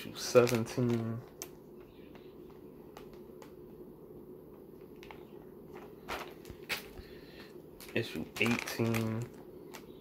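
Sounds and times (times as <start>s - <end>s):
low steady hum: 0.0s - 10.0s
plastic cases being handled: 0.1s - 3.7s, 4.5s - 10.0s.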